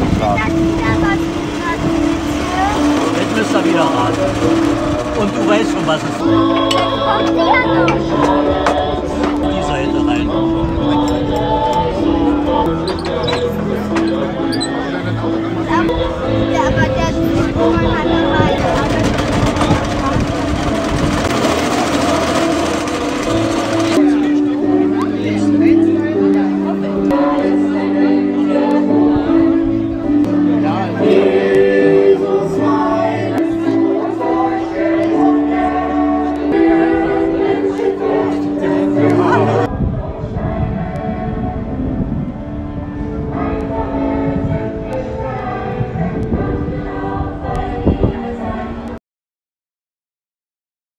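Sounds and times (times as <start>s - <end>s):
background voices: 0.0s - 41.7s
choir singing held chords: 0.0s - 49.0s
wood lathe running: 1.2s - 6.9s, 18.6s - 24.1s.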